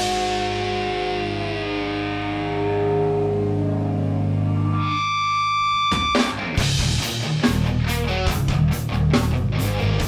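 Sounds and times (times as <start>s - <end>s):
distorted electric guitar chord: 0.0s - 10.0s
drums crashing: 5.9s - 10.0s
full band playing: 5.9s - 10.0s.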